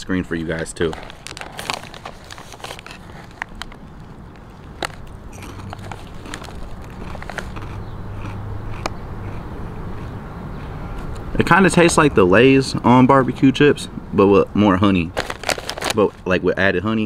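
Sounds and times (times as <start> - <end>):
chips crunching: 0.4 - 10.1, 15.0 - 16.2.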